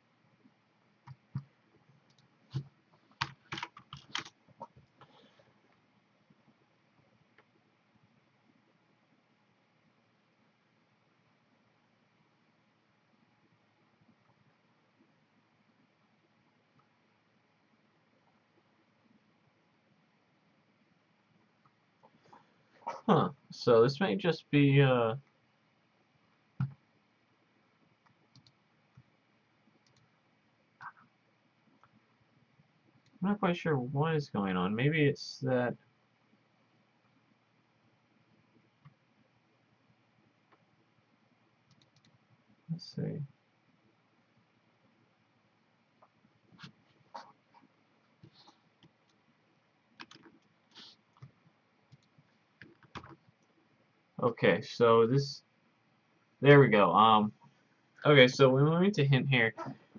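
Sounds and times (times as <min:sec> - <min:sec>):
computer keyboard typing: 0:02.1 - 0:05.0, 0:50.0 - 0:50.5, 0:51.9 - 0:53.2
faint computer mouse clicks: 0:41.7 - 0:42.2.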